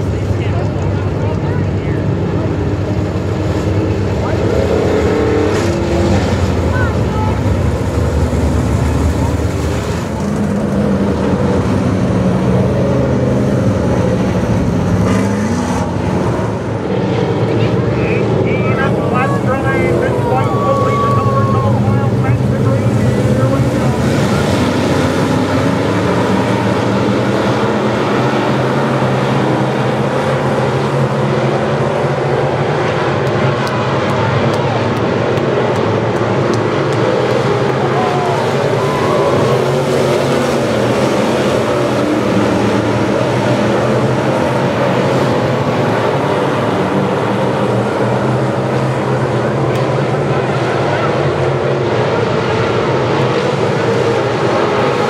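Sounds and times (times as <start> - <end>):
race car engines revving: 0.0 - 55.0.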